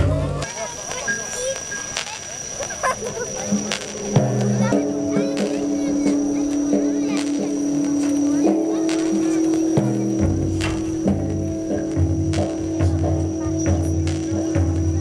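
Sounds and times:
deep bass line: 0.0s - 0.4s, 3.6s - 15.0s
thin high tone: 0.0s - 15.0s
music with long held notes: 3.1s - 15.0s.

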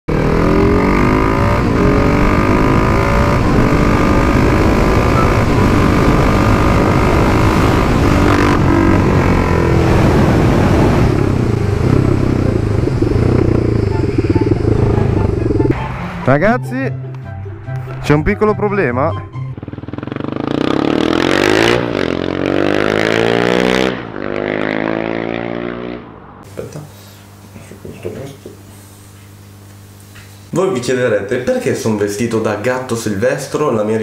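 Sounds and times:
motorcycle engine accelerating: 0.1s - 16.4s, 18.0s - 26.5s.

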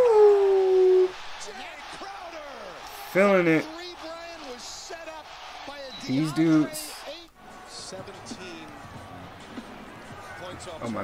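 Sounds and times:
arena crowd noise: 0.4s - 11.0s.

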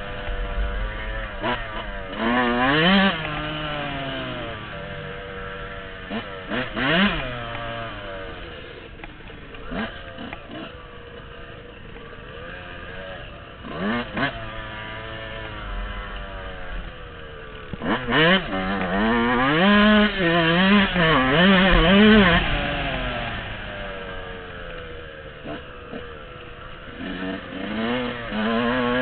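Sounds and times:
dirt bike engine revving: 0.0s - 29.0s.

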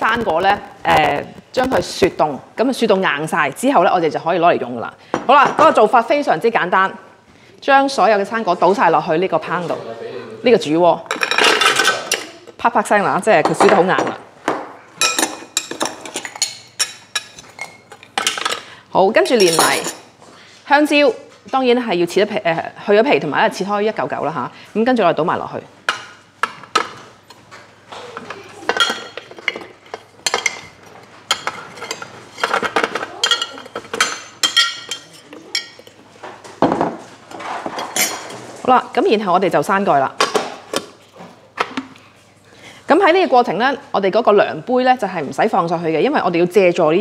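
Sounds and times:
metal spoon clinking: 19.4s - 20.0s, 31.3s - 36.0s.

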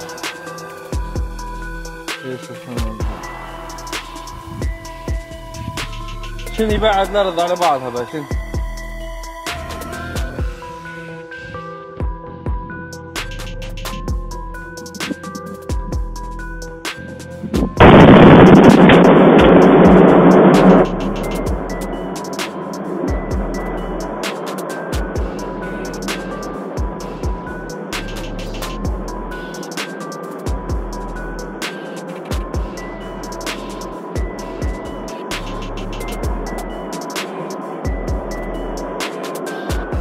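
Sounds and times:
background music with steady beat: 0.0s - 40.0s
loud distorted explosion boom: 17.6s - 21.7s.

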